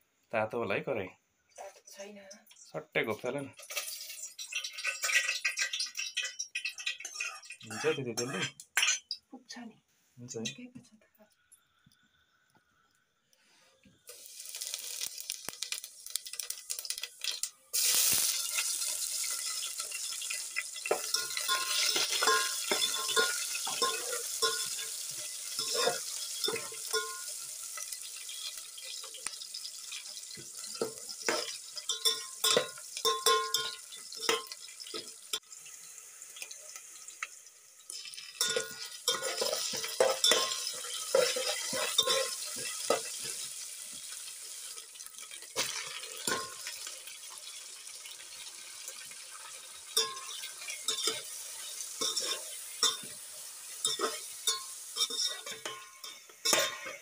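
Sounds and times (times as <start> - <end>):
food sizzling in hot oil: 1.9 - 9.3, 11.4 - 57.0
utensil clanking against pot: 19.2 - 27.4, 30.6 - 35.4, 38.4 - 43.4, 45.6 - 46.7, 50.0 - 51.3, 52.0 - 53.2, 53.8 - 57.0.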